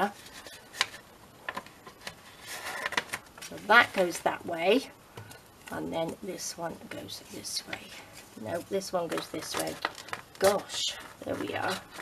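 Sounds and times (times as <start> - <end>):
paper rustling: 0.0 - 4.3, 6.9 - 12.0.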